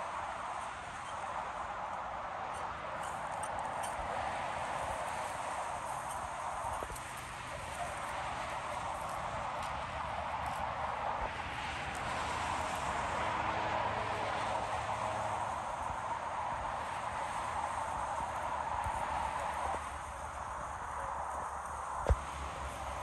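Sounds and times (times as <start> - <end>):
highway traffic road noise: 0.0 - 23.0.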